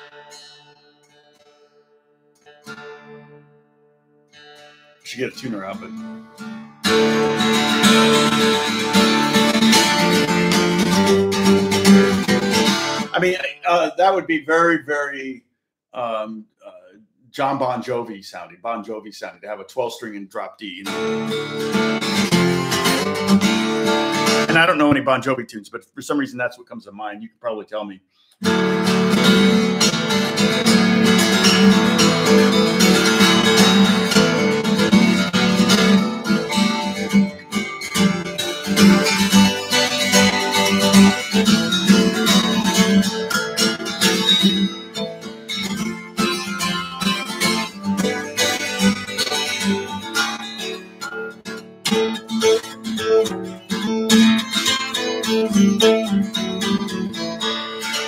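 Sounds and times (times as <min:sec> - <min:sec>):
acoustic guitar strumming: 0:00.0 - 0:15.3, 0:19.8 - 0:25.5, 0:28.4 - 0:58.0.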